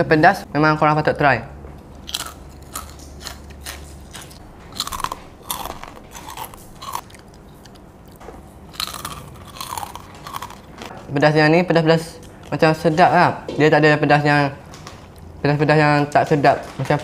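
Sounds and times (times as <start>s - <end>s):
chewing crispy crackers: 2.0s - 10.9s.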